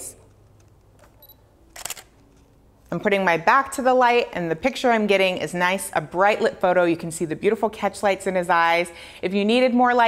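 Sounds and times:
camera shutter clack: 0:01.0 - 0:02.2.

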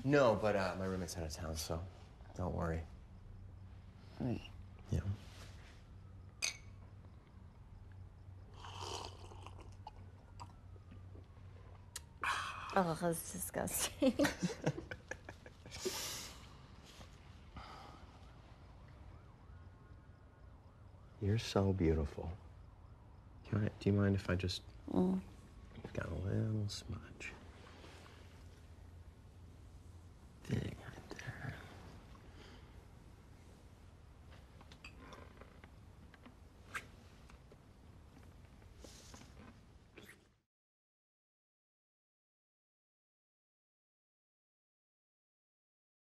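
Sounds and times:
low room hum: 0:00.0 - 0:40.4
woman sipping from a glass: 0:08.5 - 0:10.6.

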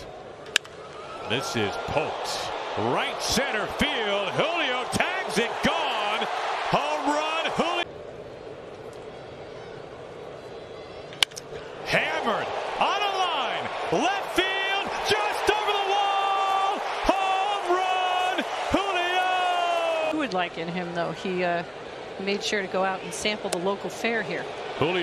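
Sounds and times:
loud raised voices: 0:01.4 - 0:07.9, 0:11.8 - 0:20.2.

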